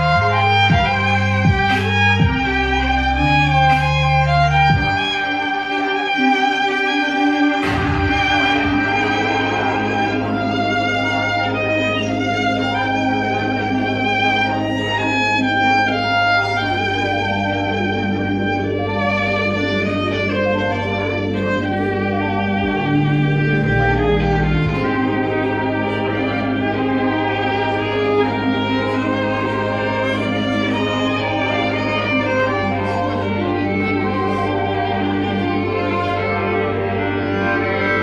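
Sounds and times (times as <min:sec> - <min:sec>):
violin melody: 0:00.0 - 0:38.0
low bass note: 0:07.3 - 0:13.8, 0:22.1 - 0:27.3.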